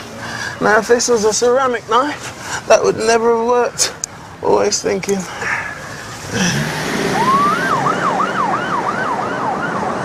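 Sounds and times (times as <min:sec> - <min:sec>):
emergency siren wailing and yelping: 0:07.0 - 0:10.0.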